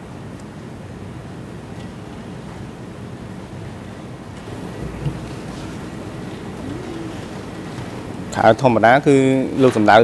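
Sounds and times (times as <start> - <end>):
microphone feed hiss and hum: 0.0 - 10.0.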